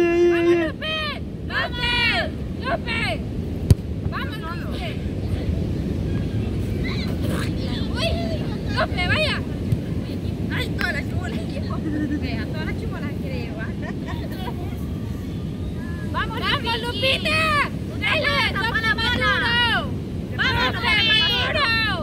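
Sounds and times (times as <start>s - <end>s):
beach surf: 0.0s - 22.0s.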